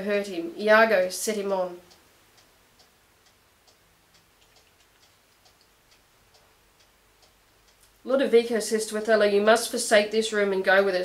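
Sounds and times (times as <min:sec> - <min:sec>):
faint regular ticking: 0:00.0 - 0:11.0.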